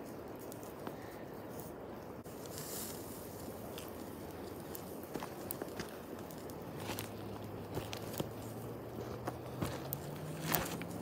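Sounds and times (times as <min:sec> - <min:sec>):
steady background hiss: 0:00.0 - 0:11.0
footsteps on gravel: 0:03.7 - 0:11.0.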